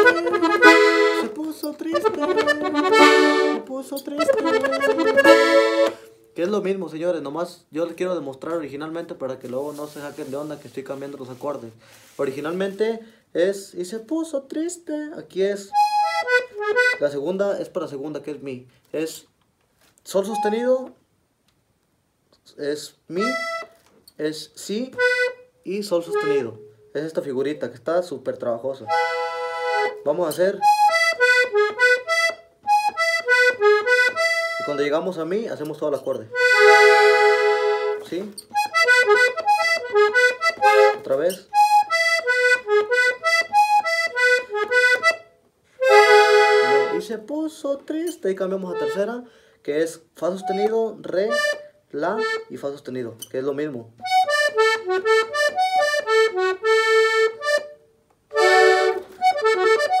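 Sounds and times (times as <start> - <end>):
piano accordion short notes: 0.0 - 6.2, 28.9 - 34.9, 35.7 - 45.2, 45.8 - 47.0, 50.4 - 52.5, 58.4 - 60.0.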